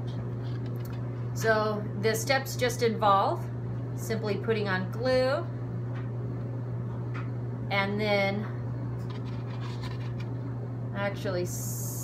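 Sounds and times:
steady low hum: 0:00.0 - 0:12.0
light scratching and handling noises: 0:09.0 - 0:10.4.

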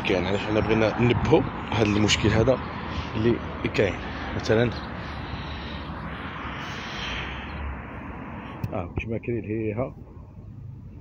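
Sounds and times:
wind buffeting microphone: 0:00.0 - 0:03.6.

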